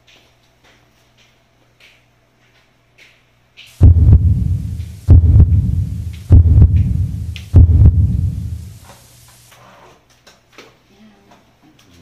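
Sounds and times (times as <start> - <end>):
deep booms: 3.8 - 8.8.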